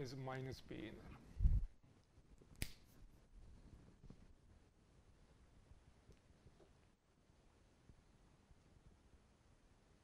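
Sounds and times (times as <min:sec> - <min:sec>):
sharp click: 0:02.5 - 0:02.9.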